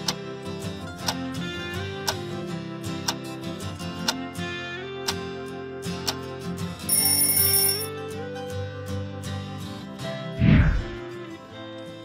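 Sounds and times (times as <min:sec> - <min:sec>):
background guitar music: 0:00.0 - 0:12.0
high bell-like timer ding: 0:06.9 - 0:07.9.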